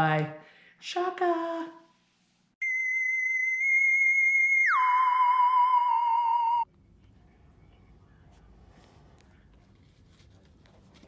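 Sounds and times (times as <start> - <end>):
warbling electronic tone: 2.6 - 6.7.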